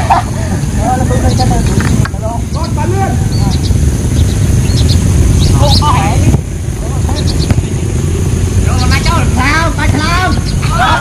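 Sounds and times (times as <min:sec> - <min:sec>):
steady low rumble: 0:00.0 - 0:11.0
players shouting: 0:08.6 - 0:11.0.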